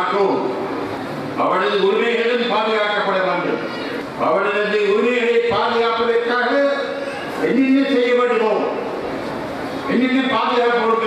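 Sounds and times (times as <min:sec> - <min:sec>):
man speaking through a microphone: 0:00.0 - 0:00.7, 0:01.4 - 0:09.0, 0:09.8 - 0:11.0.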